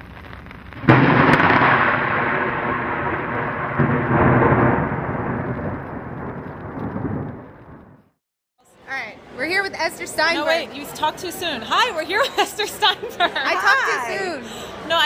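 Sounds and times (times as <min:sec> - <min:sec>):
thunder crack: 0:00.0 - 0:08.2
rolling thunder rumble: 0:00.8 - 0:08.2.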